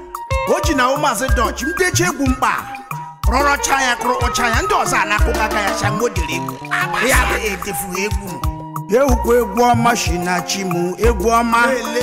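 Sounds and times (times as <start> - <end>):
deep bass notes: 5.2 - 8.0
lead voice singing: 5.8 - 7.8.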